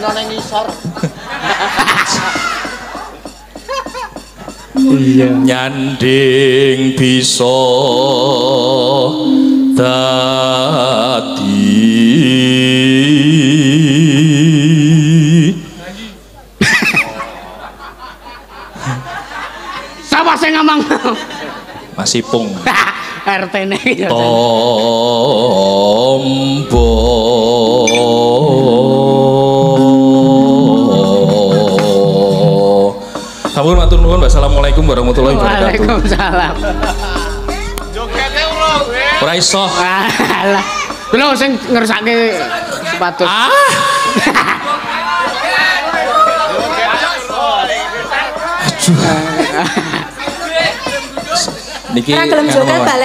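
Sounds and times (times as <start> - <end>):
held accompaniment notes: 4.8 - 6.8, 9.1 - 12.0, 33.7 - 41.3
person singing slow melody: 4.8 - 15.8, 24.2 - 32.7, 33.7 - 40.3.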